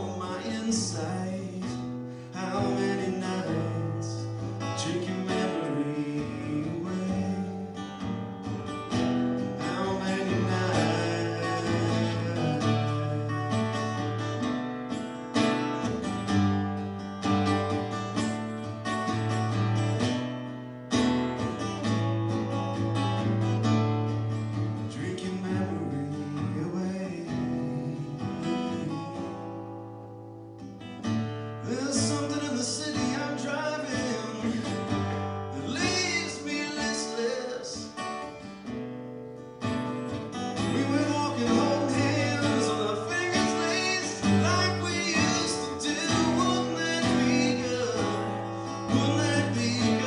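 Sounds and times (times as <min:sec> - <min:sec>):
acoustic guitar strumming: 0:00.0 - 0:50.0.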